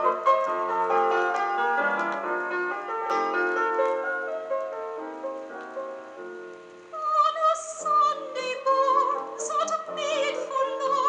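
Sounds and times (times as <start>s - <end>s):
solo acoustic piano from vinyl: 0.0s - 11.0s.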